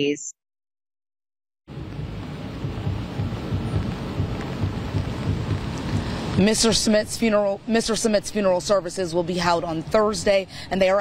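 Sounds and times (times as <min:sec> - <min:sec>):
rain on an umbrella: 0:01.7 - 0:06.8
low rumble: 0:01.7 - 0:07.1.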